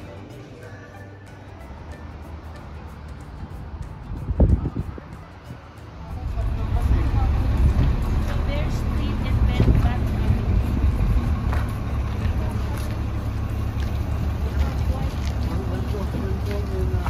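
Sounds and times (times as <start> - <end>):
bus engine idling: 0.0 - 17.0
people talking: 4.3 - 17.0.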